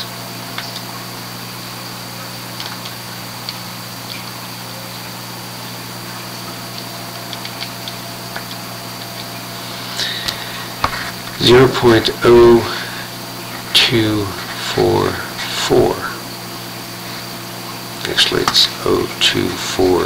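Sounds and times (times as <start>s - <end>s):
low electrical hum: 0.0s - 20.0s
even hiss: 9.4s - 20.0s.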